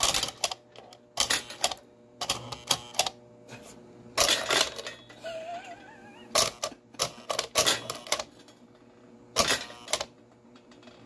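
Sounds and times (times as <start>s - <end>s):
toy train car mechanism clattering: 0.0s - 3.1s, 4.2s - 5.1s, 6.4s - 8.6s, 9.4s - 11.0s.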